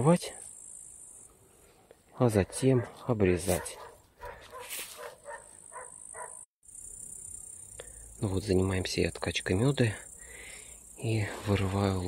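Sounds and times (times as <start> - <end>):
dog barking: 2.7 - 6.5.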